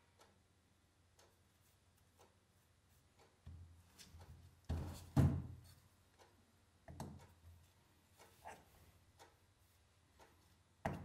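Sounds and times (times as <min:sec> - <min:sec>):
soft ticks: 0:00.0 - 0:04.5, 0:06.0 - 0:10.8.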